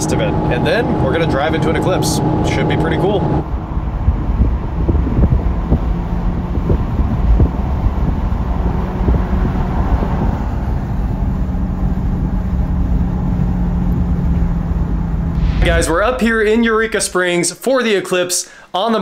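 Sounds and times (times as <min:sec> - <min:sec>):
car engine drone: 0:00.0 - 0:17.2
tyre and wind noise: 0:03.4 - 0:15.8.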